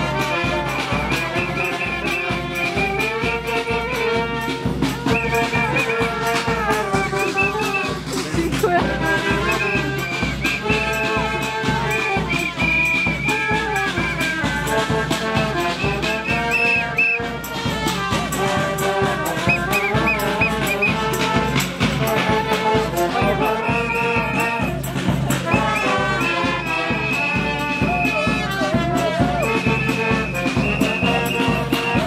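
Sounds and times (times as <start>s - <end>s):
brass band playing: 0.0s - 32.0s
steady bass drum beat: 0.0s - 32.0s.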